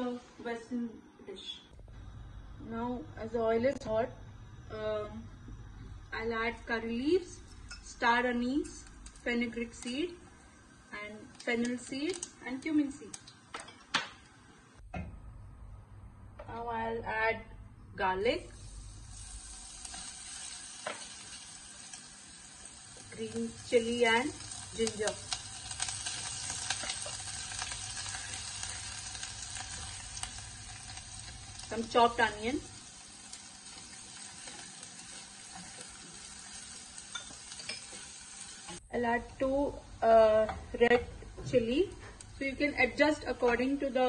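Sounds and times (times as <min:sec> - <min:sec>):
garlic sizzling in oil: 0:06.2 - 0:14.4, 0:18.4 - 0:39.8.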